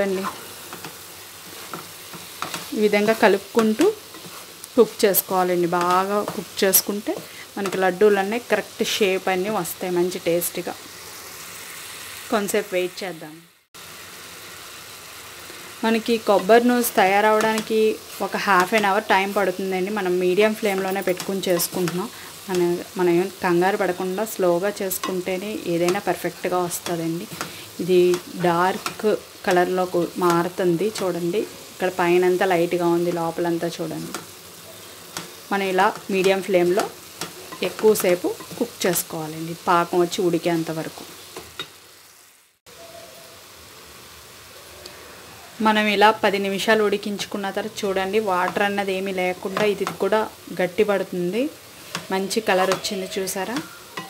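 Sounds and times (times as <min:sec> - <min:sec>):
sizzling in a pan: 0:00.0 - 0:54.0.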